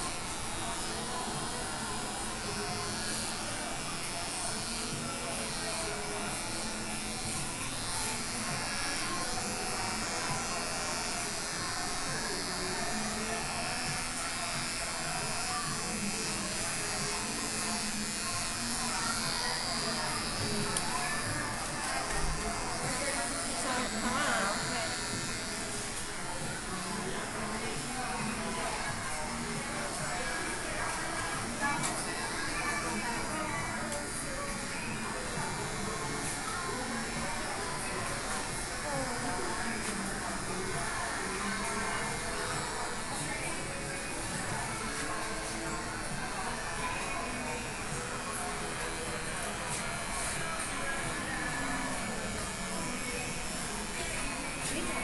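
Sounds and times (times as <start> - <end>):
electric hair clippers buzzing: 0.0 - 55.0.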